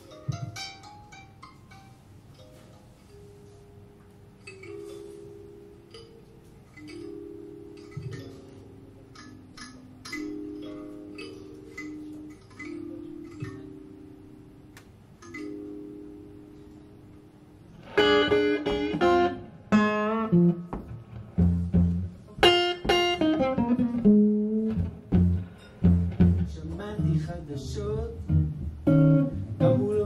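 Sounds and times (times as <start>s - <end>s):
blues harmonica: 17.8s - 20.7s.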